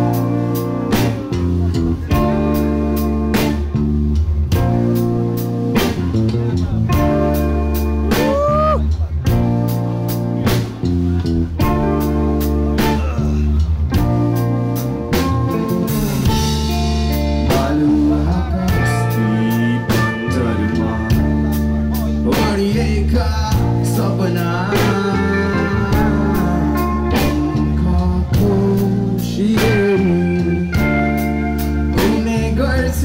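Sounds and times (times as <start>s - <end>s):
drum and cymbal hits: 0.0s - 19.1s
bass guitar: 0.0s - 33.0s
electric guitars playing chords: 0.0s - 33.0s.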